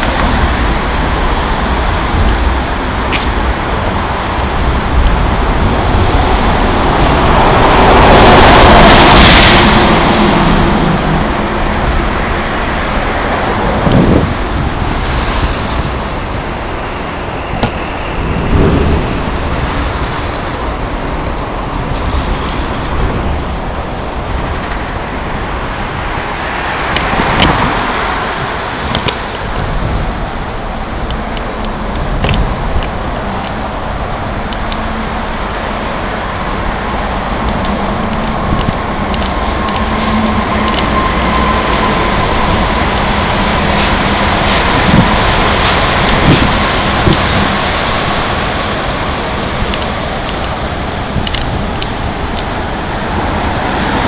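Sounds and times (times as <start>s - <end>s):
road traffic noise: 0.0s - 54.0s.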